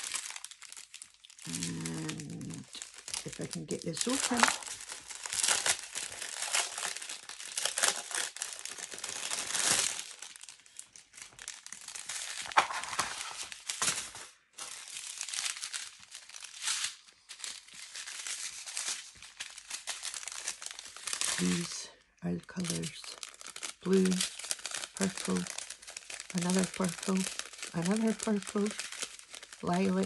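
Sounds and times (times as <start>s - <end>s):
plastic packaging crinkling: 0.0s - 30.0s.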